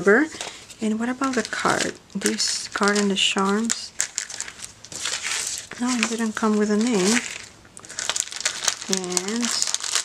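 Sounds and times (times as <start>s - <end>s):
cellophane bag crinkling: 0.3s - 10.0s.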